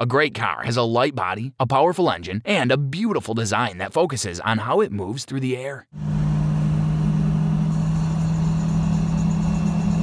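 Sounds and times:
car engines droning: 6.0 - 10.0.

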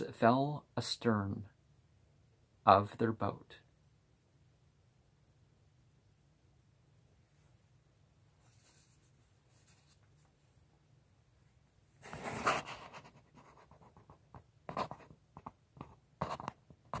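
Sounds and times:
handling noise rustle and scrape: 7.3 - 10.8, 11.5 - 17.0
small clicks and scrapes: 12.0 - 17.0.

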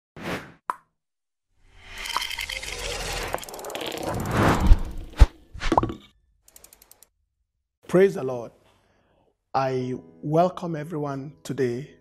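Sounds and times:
rising whoosh: 2.5 - 5.5.

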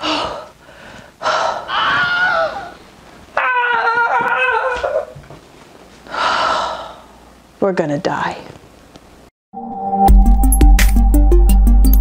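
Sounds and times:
woman breathing heavily and gasping: 0.0 - 2.9, 6.0 - 7.2
woman moaning: 1.2 - 2.8.

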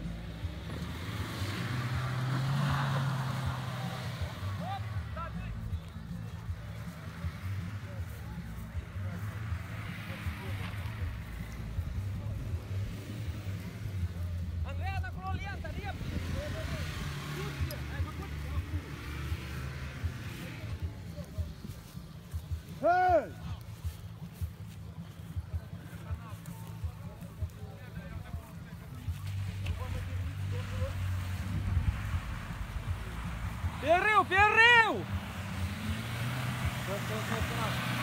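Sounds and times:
vehicle engine droning: 0.0 - 38.0
voices calling out: 0.0 - 38.0
loud shout: 33.8 - 35.2.

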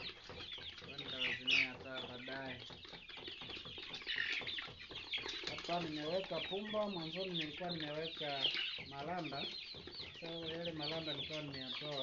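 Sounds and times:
chickens calling: 0.0 - 12.0.

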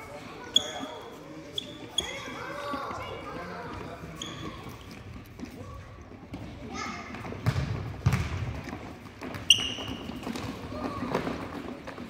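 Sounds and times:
children's voices: 2.1 - 3.9.

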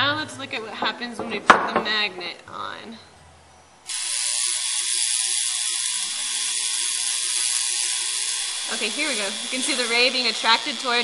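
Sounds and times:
tesla coil hissing buzz: 3.6 - 11.0.

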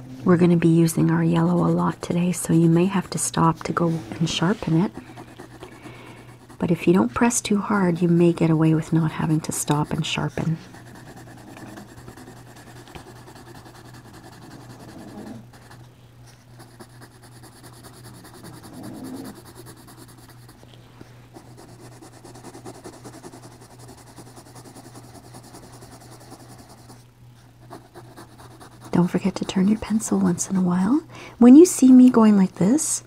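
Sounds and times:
low steady hum: 0.0 - 33.0
pencil scratching on paper: 0.8 - 15.9, 16.6 - 20.6, 21.3 - 27.0, 27.6 - 30.4.

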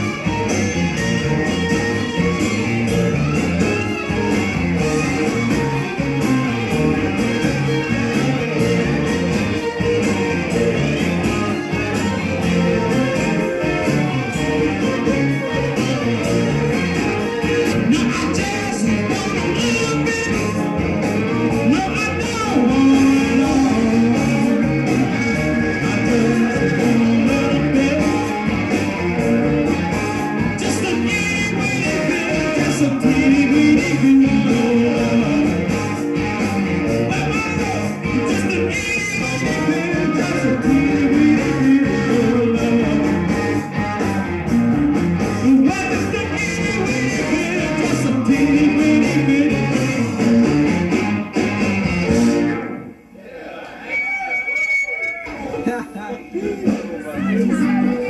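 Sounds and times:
steady bass line: 0.0 - 53.1, 55.3 - 58.0
live band with electric guitar: 0.0 - 58.0.

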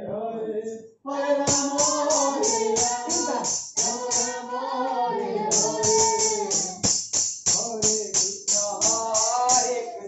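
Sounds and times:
person singing devotional melody: 1.1 - 6.8
jingling hand cymbals: 1.5 - 4.4, 5.5 - 9.9.

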